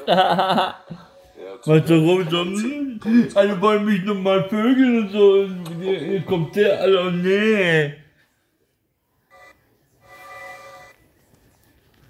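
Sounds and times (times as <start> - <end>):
electronic phone tones: 9.3 - 11.0.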